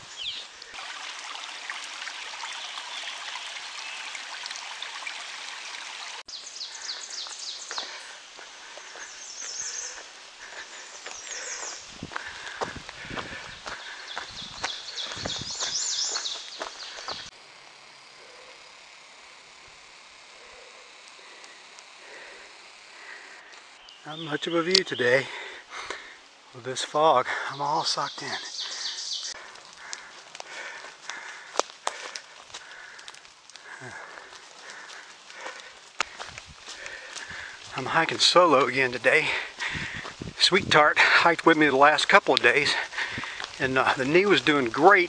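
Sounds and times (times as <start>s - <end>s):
birds singing: 0.0s - 0.8s, 2.3s - 5.1s, 6.2s - 17.3s, 23.0s - 33.0s, 33.6s - 45.0s
steady background hiss: 5.6s - 45.0s
footsteps on dirt path: 6.3s - 17.4s, 27.2s - 45.0s.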